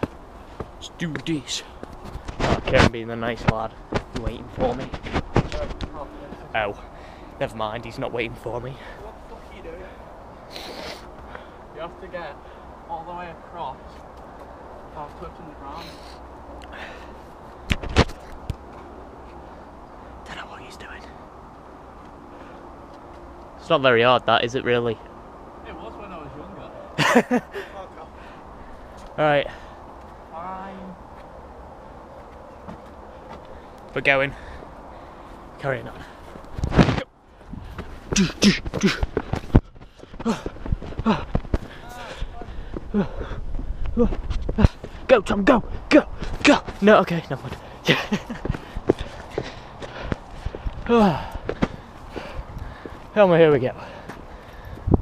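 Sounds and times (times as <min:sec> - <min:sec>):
knocks and bumps on camera: 0:00.0 - 0:06.4, 0:17.7 - 0:18.8
footsteps on dirt path: 0:00.0 - 0:09.7, 0:31.0 - 0:45.1, 0:45.7 - 0:55.0
faint outdoor background: 0:00.0 - 0:55.0.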